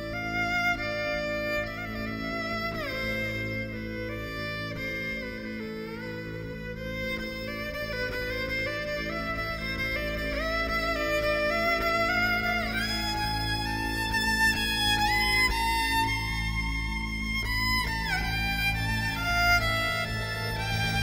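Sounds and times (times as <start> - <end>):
low accompaniment: 0.0 - 21.0
violin solo melody: 0.0 - 21.0.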